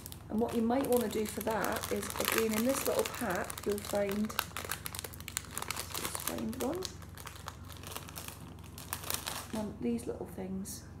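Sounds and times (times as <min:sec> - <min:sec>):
plastic bag crinkling: 0:00.0 - 0:09.7.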